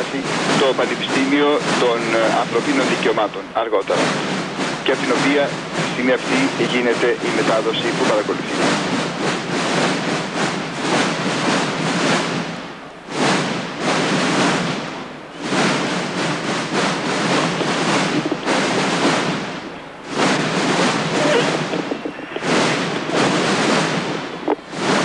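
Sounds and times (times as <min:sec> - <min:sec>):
massed marching drums: 0:00.0 - 0:25.0.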